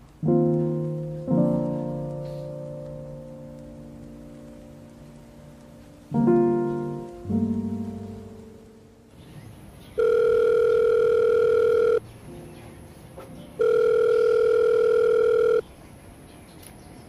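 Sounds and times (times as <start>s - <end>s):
telephone ringback tone: 10.0s - 12.0s, 13.6s - 15.6s.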